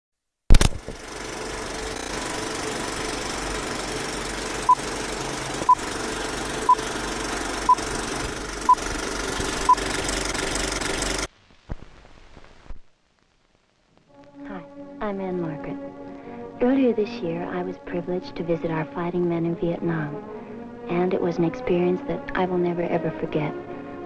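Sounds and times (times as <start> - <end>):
sharp click: 0.5 - 1.0
film projector clattering: 0.5 - 11.3.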